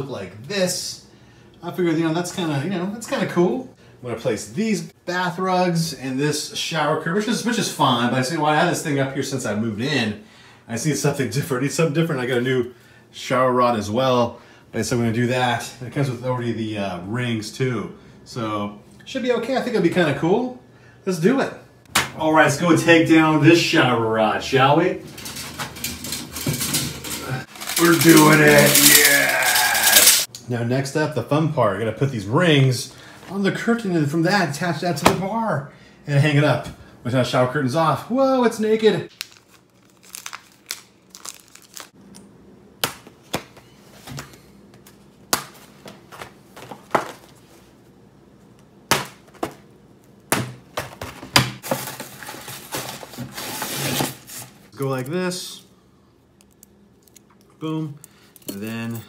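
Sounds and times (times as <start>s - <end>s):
plastic packaging crinkling: 27.2s - 30.3s, 39.1s - 42.0s.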